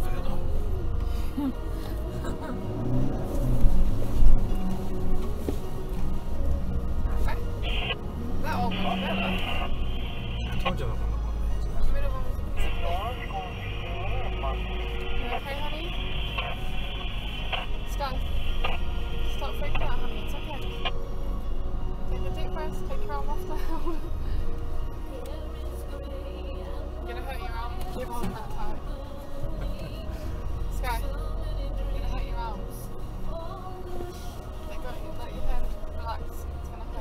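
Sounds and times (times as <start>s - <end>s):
low engine rumble: 0.0s - 37.0s
music playing in the cabin: 0.0s - 37.0s
steady high-pitched tone: 8.6s - 11.6s, 12.4s - 20.9s.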